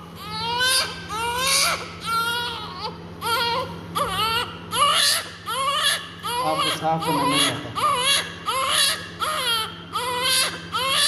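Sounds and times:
steady low hum: 0:00.0 - 0:11.0
newborn baby crying: 0:00.2 - 0:11.0.

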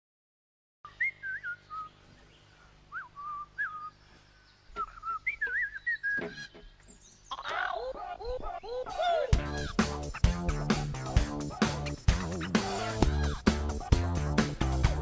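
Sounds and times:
faint low hum: 0:00.9 - 0:09.5
bird-like whistled notes: 0:02.9 - 0:04.0, 0:04.8 - 0:06.4
music: 0:09.2 - 0:15.0.

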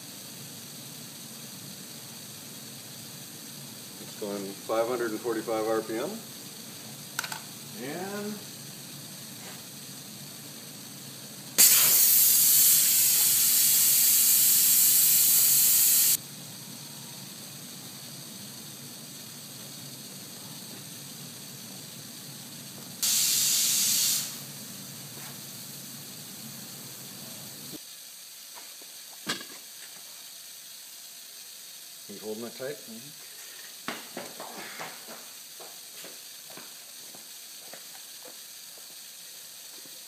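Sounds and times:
loud bursts of air hiss: 0:00.0 - 0:40.0
steady compressed air hiss: 0:00.0 - 0:40.0.

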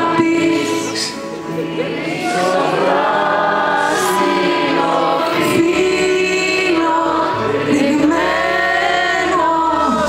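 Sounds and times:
woman singing: 0:00.0 - 0:01.2, 0:03.9 - 0:10.0.

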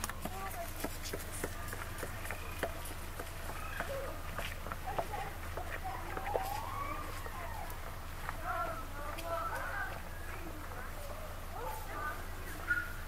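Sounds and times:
distant voices talking: 0:00.0 - 0:13.0.

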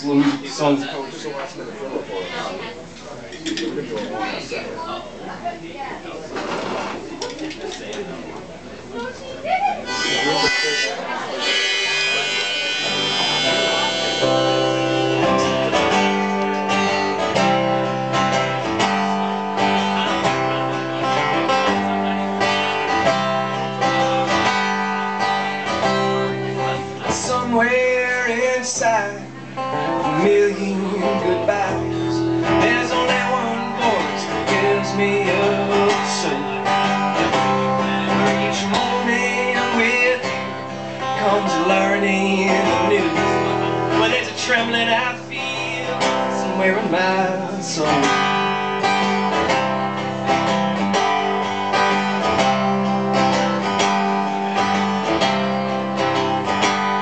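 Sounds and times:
acoustic guitar strumming: 0:09.8 - 0:57.0.

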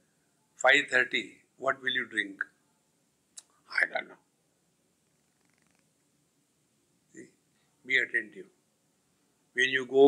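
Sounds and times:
faint rapid rattle: 0:05.0 - 0:06.0.

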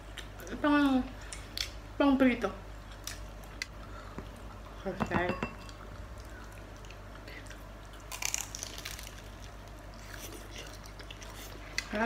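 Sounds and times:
dishes clinking: 0:05.0 - 0:05.8.

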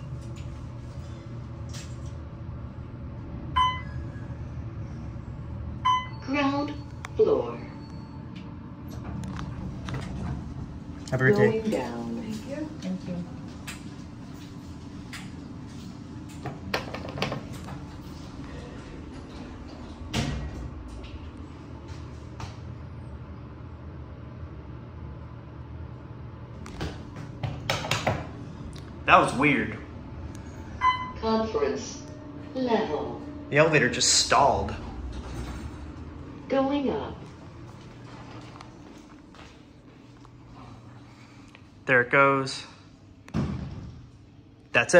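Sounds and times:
elevator low hum: 0:00.0 - 0:44.8
soft footsteps on hard floor: 0:37.2 - 0:40.2.

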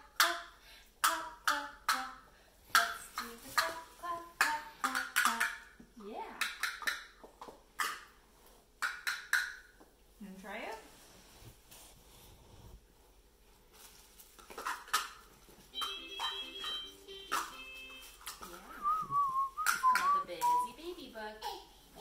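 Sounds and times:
plastic toys clattering: 0:14.4 - 0:18.5.

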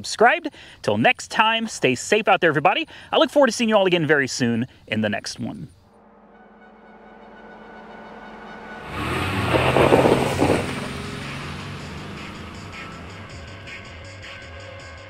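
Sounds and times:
loud rushing car pass: 0:08.3 - 0:14.5
music with light regular beat: 0:12.4 - 0:15.0.

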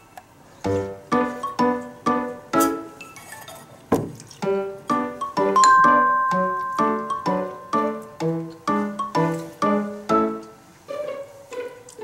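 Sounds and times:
ringing chime-like notes: 0:05.6 - 0:08.0.

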